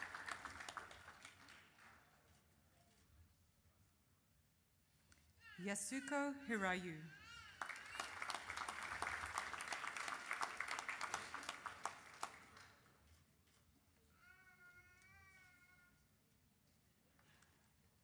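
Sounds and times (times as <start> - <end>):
audience applauding: 0.0 - 2.0, 7.5 - 12.8.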